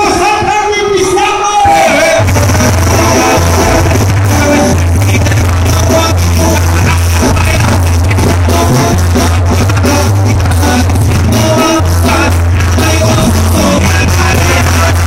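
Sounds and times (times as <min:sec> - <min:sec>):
person singing: 0:01.6 - 0:15.0
live brass band music: 0:01.9 - 0:15.0
deep bass line: 0:02.1 - 0:15.0.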